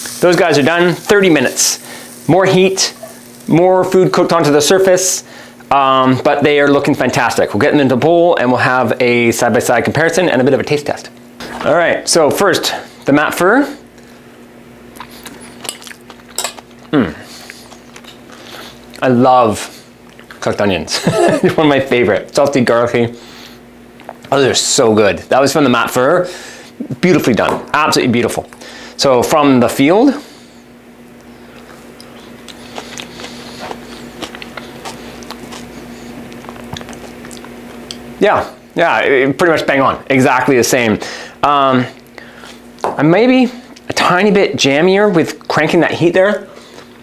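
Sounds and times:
steady low hum: 0.0s - 47.0s
chewing: 14.9s - 19.0s, 20.0s - 20.4s, 31.2s - 38.1s.

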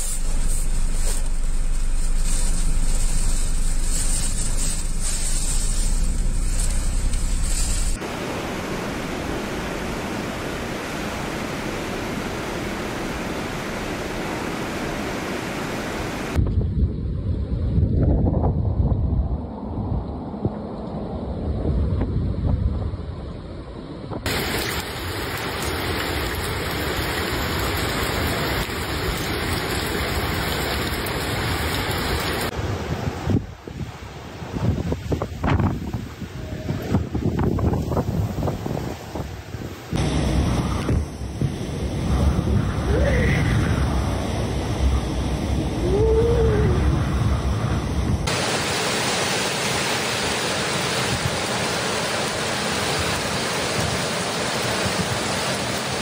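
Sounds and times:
floodwater cascading down steps: 0.0s - 16.4s, 24.3s - 32.9s, 48.2s - 56.0s
heavy rain hissing: 0.0s - 16.4s, 24.3s - 56.0s
wind gusts: 0.0s - 56.0s
wind buffeting microphone: 16.2s - 24.3s, 32.0s - 48.4s.

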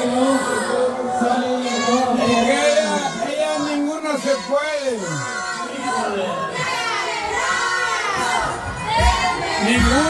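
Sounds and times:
women singing together: 6.5s - 10.0s.

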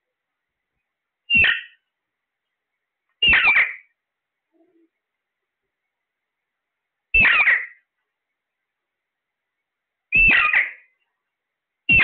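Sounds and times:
parakeets calling: 1.3s - 1.8s, 3.2s - 3.9s, 7.2s - 7.8s, 10.2s - 10.9s.

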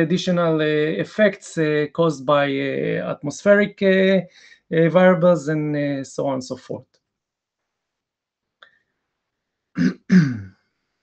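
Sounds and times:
man clearing his throat: 9.8s - 10.5s.

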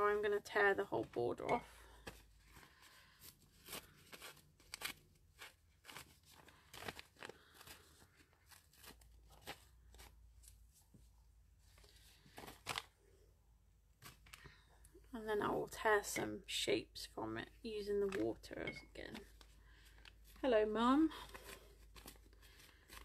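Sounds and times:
paper crackling and tearing: 2.1s - 10.2s, 12.2s - 13.0s.

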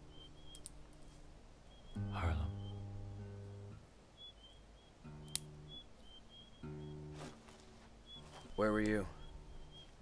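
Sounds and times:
acoustic guitar chords: 2.0s - 3.9s.

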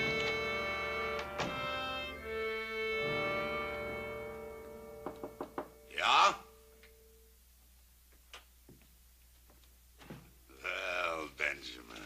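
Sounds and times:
knocks on wooden door: 5.0s - 5.8s
person calling out: 5.9s - 6.6s.

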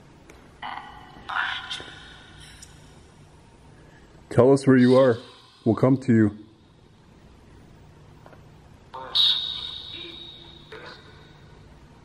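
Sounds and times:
distorted electronic speech-like bursts: 8.9s - 11.3s
high ringing tone: 9.2s - 11.6s.

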